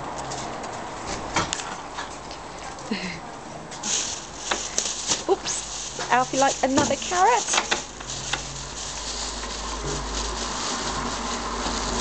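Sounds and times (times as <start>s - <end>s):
person laughing: 2.9s - 3.2s.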